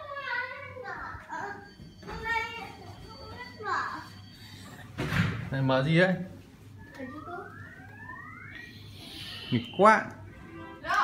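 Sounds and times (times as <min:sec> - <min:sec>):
child speaking: 0:00.0 - 0:04.2.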